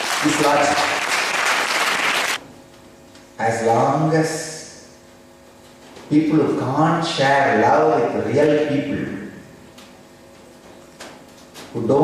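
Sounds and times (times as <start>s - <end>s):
audience applauding: 0.0s - 2.4s.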